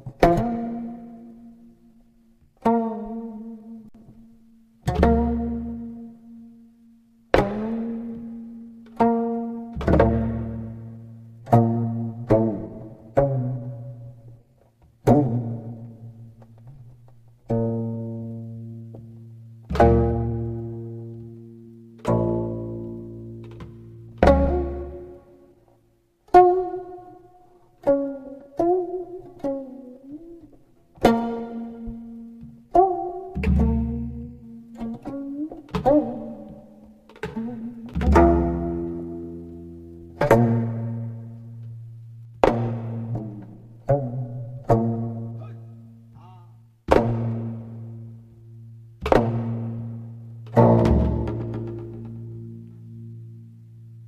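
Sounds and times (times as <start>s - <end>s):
slow plucked string music: 0.0s - 54.0s.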